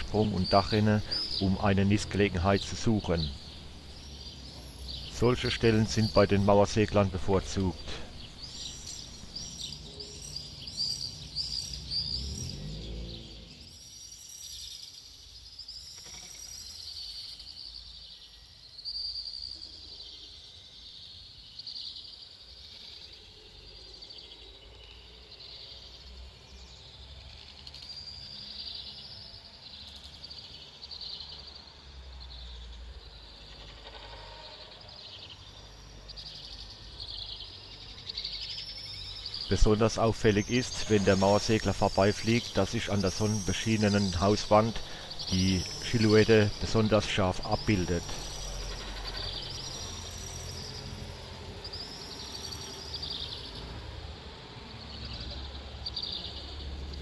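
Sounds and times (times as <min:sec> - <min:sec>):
birds chirping: 0:00.0 - 0:27.1, 0:27.8 - 0:57.0.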